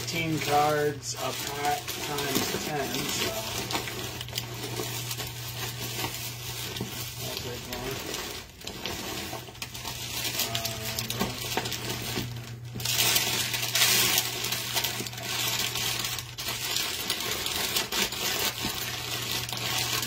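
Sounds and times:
crinkly rustling: 0.0s - 20.0s.

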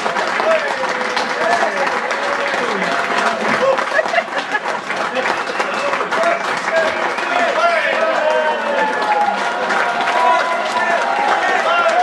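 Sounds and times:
audience applauding: 0.0s - 12.0s
cheers and shouted voices: 5.1s - 12.0s.

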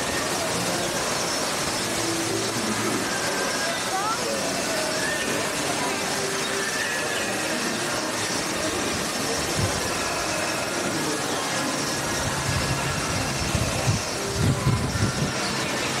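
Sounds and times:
water jets spraying and splashing: 0.0s - 16.0s.

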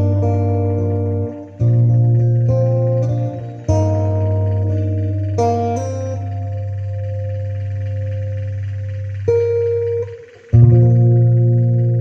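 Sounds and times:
guitar playing slowly: 0.0s - 12.0s
low backing drone: 0.0s - 12.0s.

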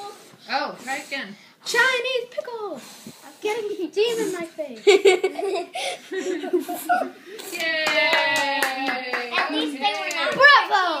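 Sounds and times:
excited voices of family: 6.0s - 11.0s
hand claps: 7.4s - 10.5s.

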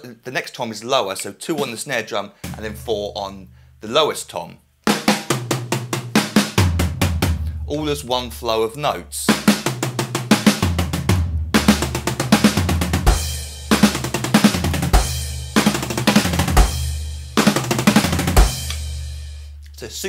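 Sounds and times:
electronic drum fill: 2.4s - 3.2s, 9.3s - 19.0s
deep bass drum hit: 2.5s - 3.2s.

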